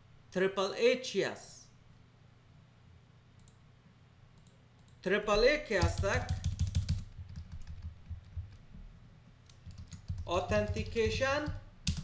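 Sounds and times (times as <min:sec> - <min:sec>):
computer keyboard keys pressed: 0:05.8 - 0:08.6, 0:09.5 - 0:12.0.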